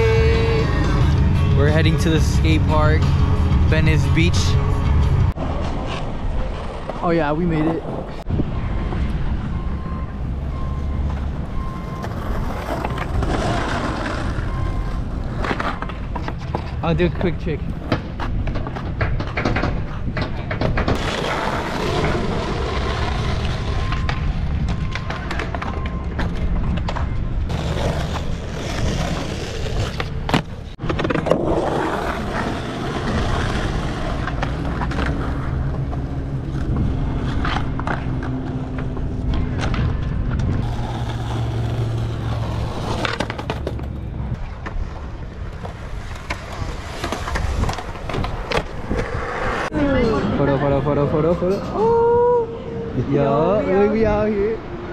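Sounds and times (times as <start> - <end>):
skateboard wheels rolling on concrete: 0.0 - 52.4.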